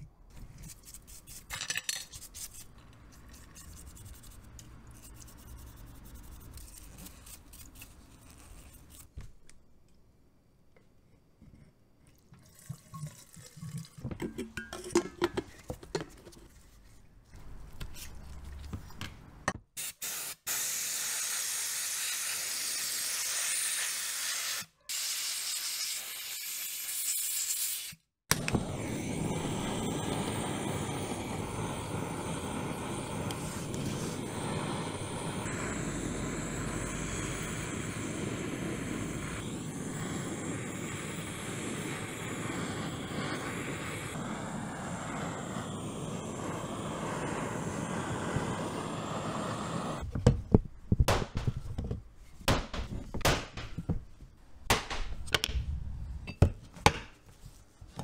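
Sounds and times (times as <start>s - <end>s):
air spray gun hissing: 19.8s - 50.0s
blowtorch burning: 20.0s - 26.9s, 28.3s - 50.1s.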